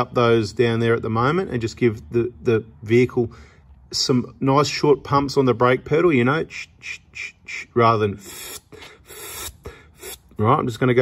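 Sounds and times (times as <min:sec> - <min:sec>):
man breathing: 0:03.3 - 0:03.8, 0:08.2 - 0:10.3.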